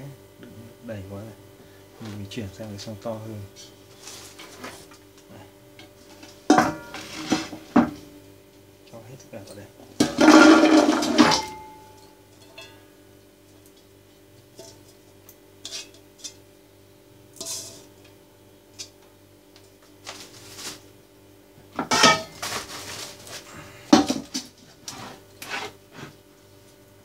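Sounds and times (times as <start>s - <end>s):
clattering of pots and utensils: 6.1s - 8.0s, 10.0s - 12.8s, 15.6s - 16.4s, 21.8s - 23.2s, 23.9s - 26.1s.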